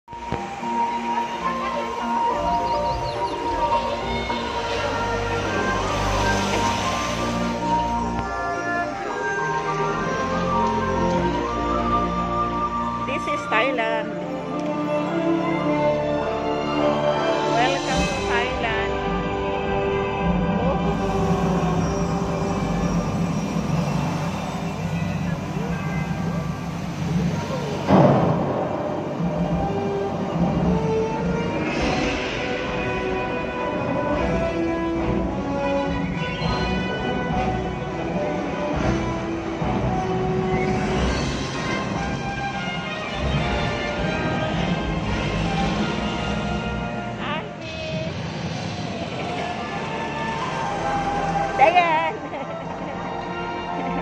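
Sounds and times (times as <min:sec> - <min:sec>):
dramatic music over loudspeakers: 0:00.1 - 0:54.0
low sustained drone: 0:00.1 - 0:54.0
loud boom: 0:26.3 - 0:29.6.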